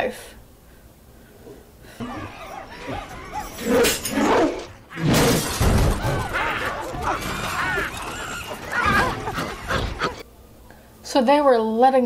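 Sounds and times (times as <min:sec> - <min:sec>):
loud crashing impacts: 0:02.7 - 0:09.8.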